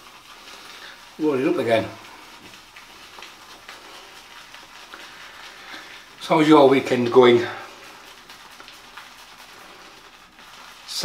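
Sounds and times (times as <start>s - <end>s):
shaving brush scrubbing soap: 0.0s - 11.0s.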